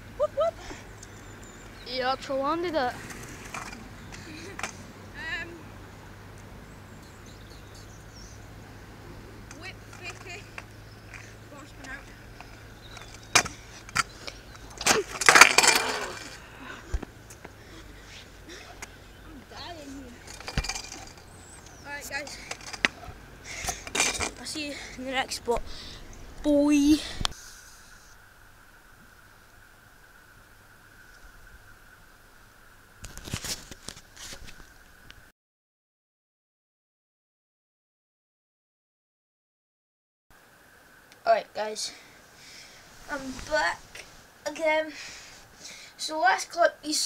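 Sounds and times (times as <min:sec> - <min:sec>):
scooter wheels rolling on asphalt: 0:00.8 - 0:08.4, 0:09.4 - 0:26.5, 0:33.0 - 0:35.2, 0:43.0 - 0:47.0
scooter clattering on the ground: 0:03.0 - 0:04.9, 0:12.9 - 0:16.4, 0:20.1 - 0:24.6.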